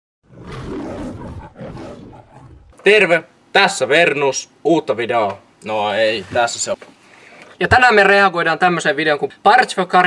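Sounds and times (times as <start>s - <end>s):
lion-like roar: 0.2s - 2.8s.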